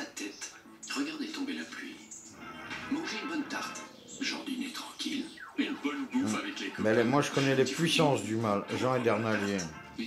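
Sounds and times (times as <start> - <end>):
background music: 0.0 - 10.0
voice talking on television: 0.0 - 10.0.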